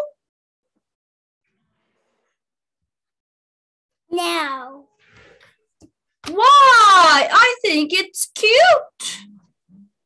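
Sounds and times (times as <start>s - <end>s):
woman's voice: 6.3s - 9.5s.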